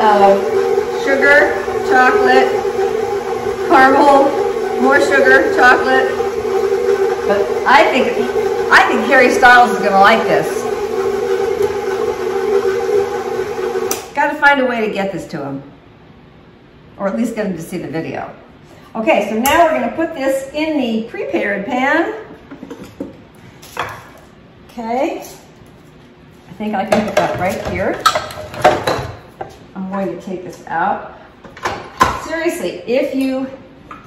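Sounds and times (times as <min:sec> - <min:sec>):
stand mixer motor humming: 0:00.0 - 0:14.1.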